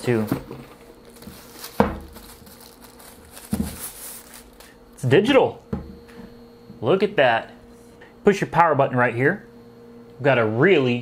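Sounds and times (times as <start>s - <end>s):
plastic bag rustling: 0.0s - 4.8s.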